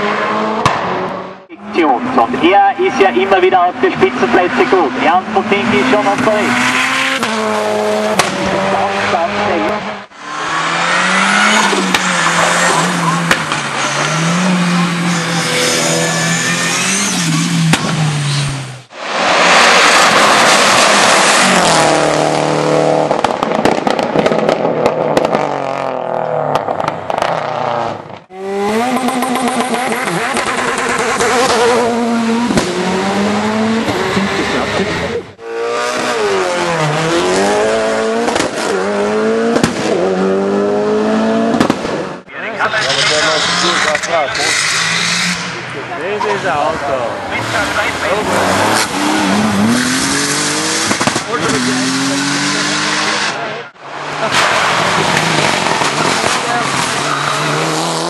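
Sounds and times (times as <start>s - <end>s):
race car engines at full throttle: 0.0s - 58.0s
exhaust pops: 8.1s - 8.6s, 17.6s - 18.1s, 23.0s - 25.6s, 38.2s - 38.8s, 39.5s - 40.0s, 41.5s - 42.0s, 50.7s - 51.6s.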